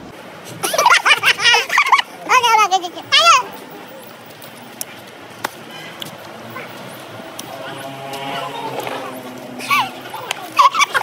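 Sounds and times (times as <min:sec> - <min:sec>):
high-pitched wavering laughter: 0:00.6 - 0:03.1, 0:07.5 - 0:11.0.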